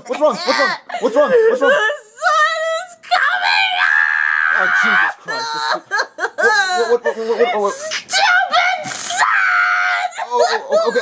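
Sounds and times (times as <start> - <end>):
person wailing scream: 3.4 - 5.7, 7.6 - 11.0.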